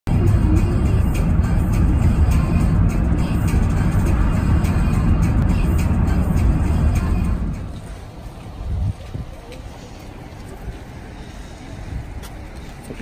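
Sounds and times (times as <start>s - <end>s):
car road and engine rumble: 0.0s - 13.0s
music playing: 0.1s - 8.0s.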